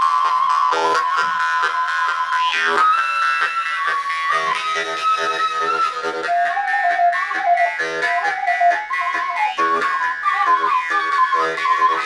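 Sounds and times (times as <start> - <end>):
jew's harp twanging: 0.0 - 12.0.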